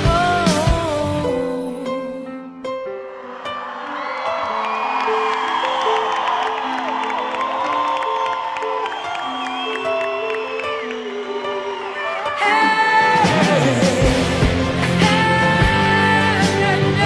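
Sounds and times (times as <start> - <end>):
live band pop ballad: 0.0 - 1.8, 12.4 - 17.0
audience cheering: 2.9 - 16.5.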